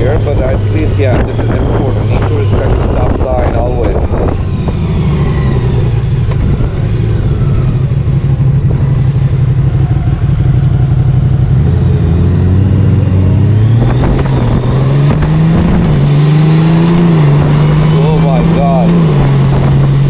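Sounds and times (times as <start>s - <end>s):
motorcycle engine running: 0.0s - 20.0s.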